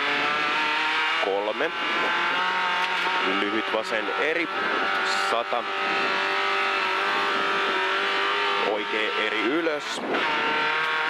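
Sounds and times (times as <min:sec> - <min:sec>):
car engine running hard: 0:00.0 - 0:11.0.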